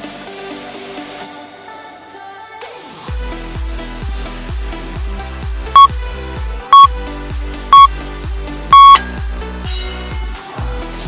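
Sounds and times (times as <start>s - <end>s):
long timer beep: 8.7s - 9.3s
short high timer beeps: 8.8s - 9.3s.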